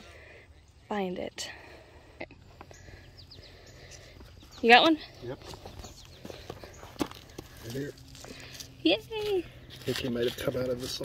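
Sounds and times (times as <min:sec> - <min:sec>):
faint bird chirps: 0:00.0 - 0:07.1.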